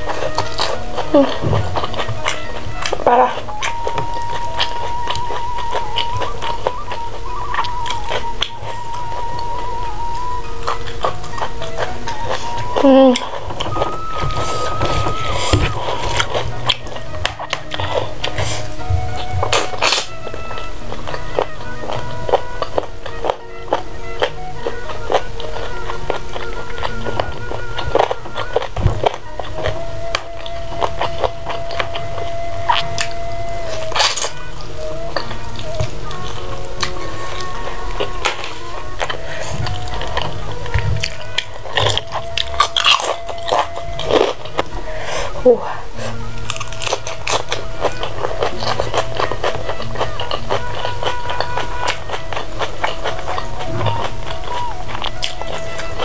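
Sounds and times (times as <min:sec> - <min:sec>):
background music with long held notes: 0:00.0 - 0:56.0
chewing: 0:00.0 - 0:56.0.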